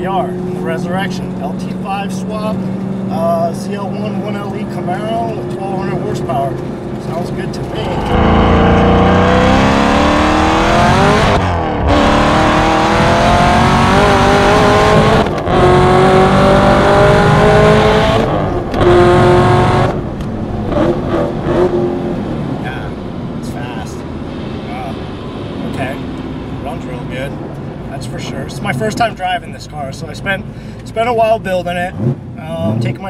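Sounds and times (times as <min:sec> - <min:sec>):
car engine accelerating hard: 0:00.0 - 0:27.2.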